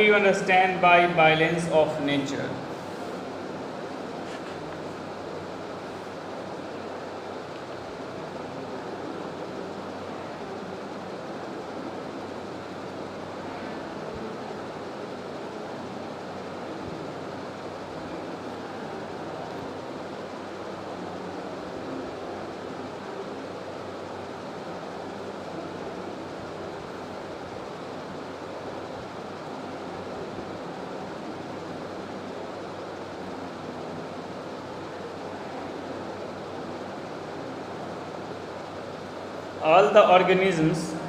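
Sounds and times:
steady hiss and rumble: 0.0 - 41.0.

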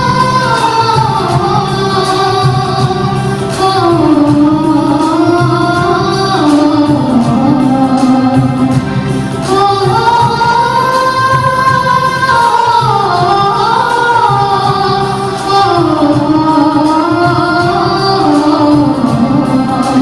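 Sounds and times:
instrumental accompaniment: 0.0 - 20.0
woman singing: 0.0 - 20.0.

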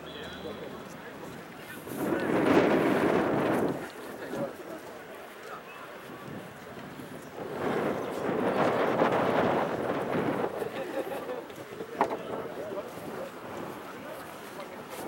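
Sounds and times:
wind: 0.0 - 15.0.

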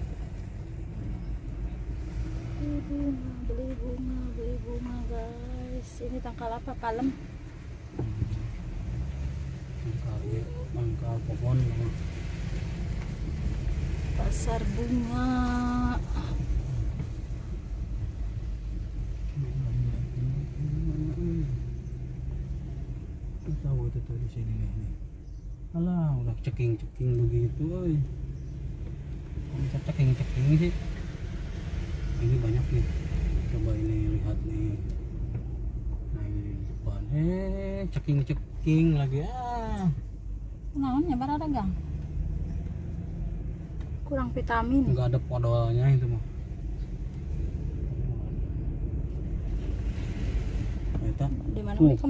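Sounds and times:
car driving slowly rumble: 0.0 - 52.0
tyres on dirt road: 0.0 - 52.0.

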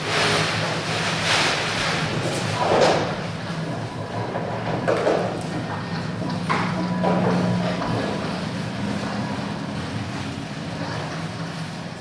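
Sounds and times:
electroacoustic noise drone: 0.0 - 12.0
low hum: 0.0 - 12.0.

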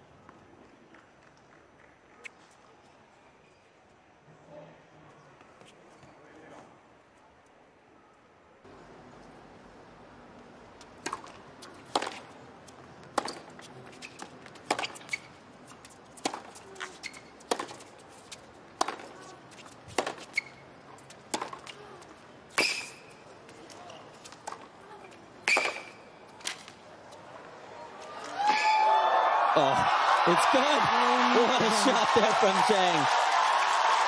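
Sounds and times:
tennis racket hitting ball: 11.0 - 12.3, 13.1 - 20.6, 21.3 - 21.8.

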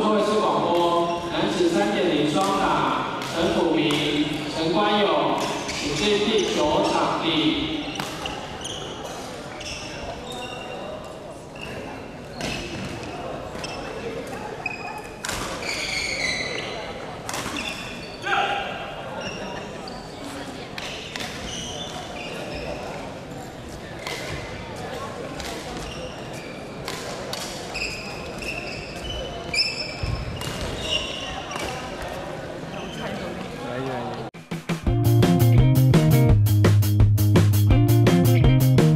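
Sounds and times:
shoes squeaking on wooden floor: 4.0 - 11.0, 11.6 - 16.9, 21.4 - 23.0, 25.7 - 26.8, 27.6 - 32.0, 32.6 - 33.6
racket hitting shuttlecock: 7.9 - 9.3, 17.3 - 17.6.

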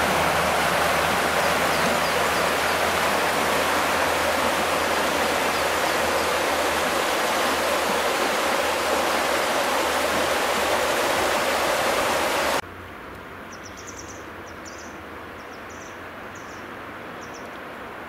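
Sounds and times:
river water rushing over stones: 0.0 - 12.6.

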